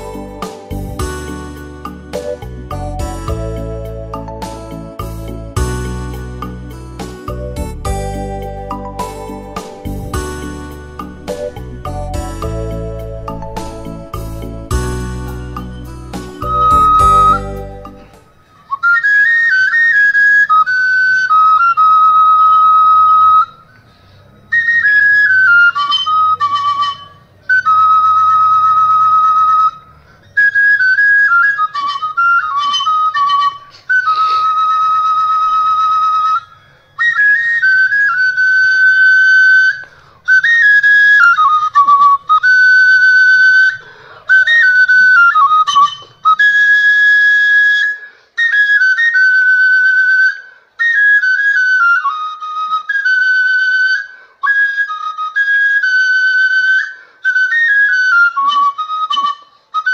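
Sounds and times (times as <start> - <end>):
flute playing solo: 8.1 - 59.9.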